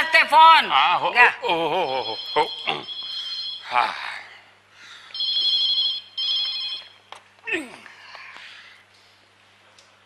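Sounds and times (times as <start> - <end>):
telephone ringing: 2.0 - 3.7, 5.1 - 7.0.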